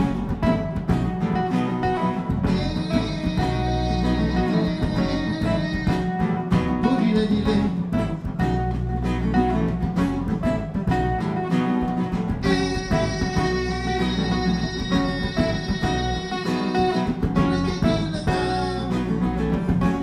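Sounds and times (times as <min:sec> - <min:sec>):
electric bass line: 0:00.0 - 0:20.0
strummed acoustic guitar: 0:00.0 - 0:20.0.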